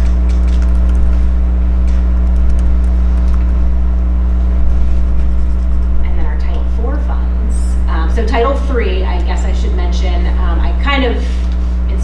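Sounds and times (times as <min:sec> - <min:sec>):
fainter higher hum tone: 0:00.0 - 0:12.0
steady low hum: 0:00.0 - 0:12.0.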